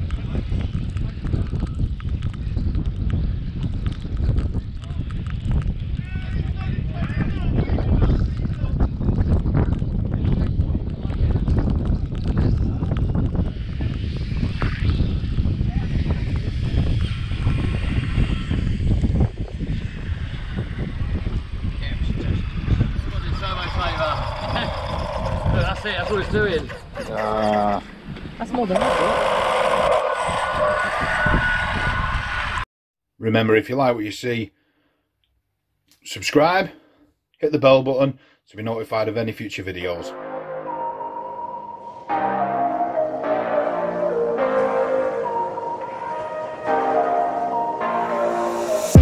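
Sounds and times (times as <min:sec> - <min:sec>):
wind buffeting microphone: 0:00.0 - 0:29.1, 0:29.7 - 0:32.6
people talking: 0:21.8 - 0:24.8, 0:25.4 - 0:27.8, 0:28.4 - 0:29.2, 0:33.2 - 0:34.5, 0:36.0 - 0:36.7, 0:37.4 - 0:40.1.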